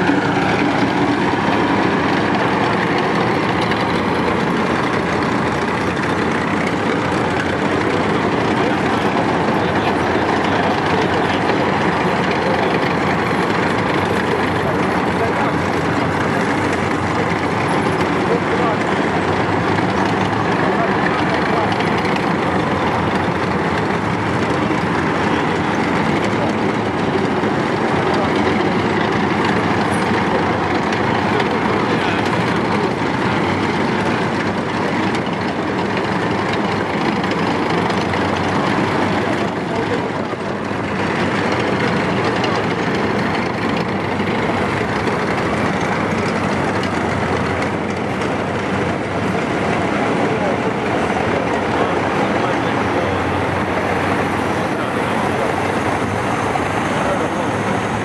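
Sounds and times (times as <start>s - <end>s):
diesel engines of military vehicles: 0.0s - 58.0s.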